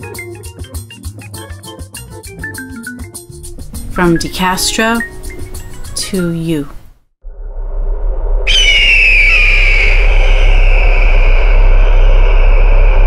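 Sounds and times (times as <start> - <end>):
low rumble: 3.4 - 6.0, 7.2 - 13.0
high whistling tone: 3.4 - 6.2, 8.4 - 13.0.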